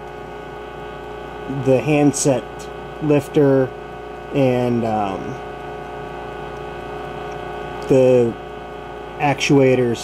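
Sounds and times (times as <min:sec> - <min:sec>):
answering machine tape hum: 0:00.0 - 0:10.0.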